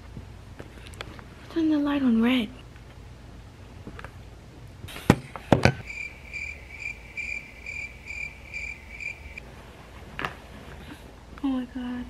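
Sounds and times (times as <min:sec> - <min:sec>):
electronic alarm beeping: 0:05.8 - 0:09.4.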